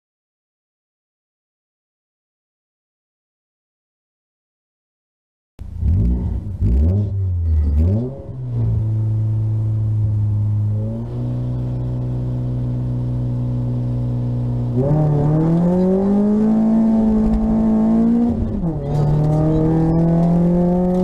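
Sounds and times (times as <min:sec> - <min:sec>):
car engine revving: 0:05.6 - 0:21.0.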